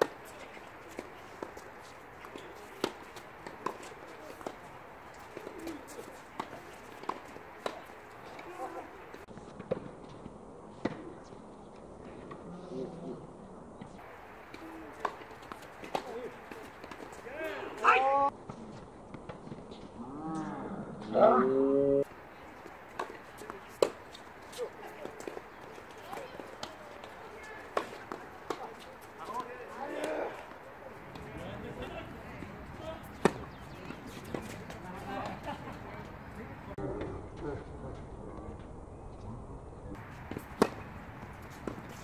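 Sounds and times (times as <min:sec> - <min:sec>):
tennis balls struck by rackets: 0:00.0 - 0:09.9, 0:13.9 - 0:18.1, 0:22.1 - 0:36.8, 0:40.0 - 0:42.0
tennis balls bouncing on court: 0:00.0 - 0:10.2, 0:14.0 - 0:19.7, 0:22.1 - 0:36.8, 0:40.0 - 0:42.0.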